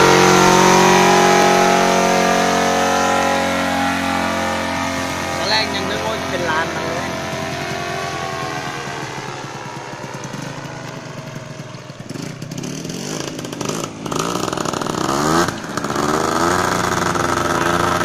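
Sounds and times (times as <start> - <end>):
paramotor engine running: 0.0 - 18.0.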